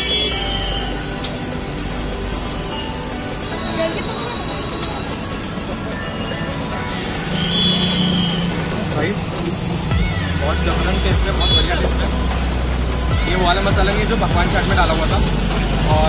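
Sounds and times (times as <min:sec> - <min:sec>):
vehicle engine running: 0:01.4 - 0:16.0
background chatter: 0:03.0 - 0:16.0.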